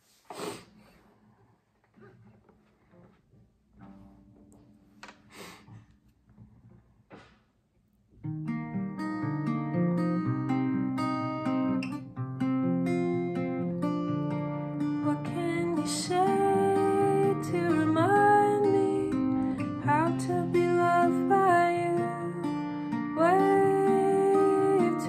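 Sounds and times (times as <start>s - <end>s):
fingerpicked acoustic guitar: 0.8s - 7.2s, 8.2s - 25.0s.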